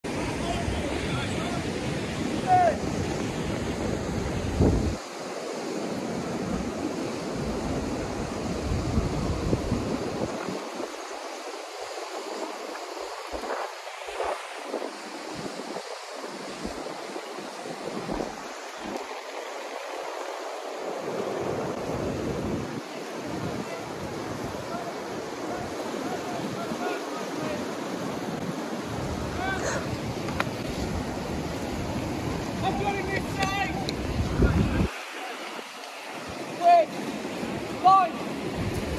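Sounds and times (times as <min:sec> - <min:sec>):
white water rushing: 0:00.0 - 0:38.9
wind buffeting microphone: 0:00.0 - 0:38.9.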